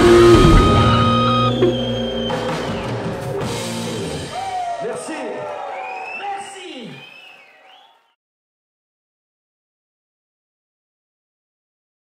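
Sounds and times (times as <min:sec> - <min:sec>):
sustained electric guitar tones: 0:00.0 - 0:03.9
rock band held chord: 0:00.0 - 0:04.6.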